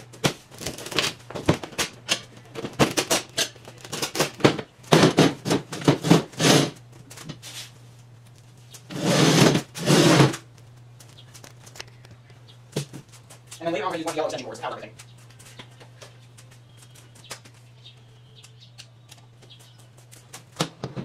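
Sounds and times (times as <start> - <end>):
table scraping: 4.4 - 6.8, 8.9 - 10.4.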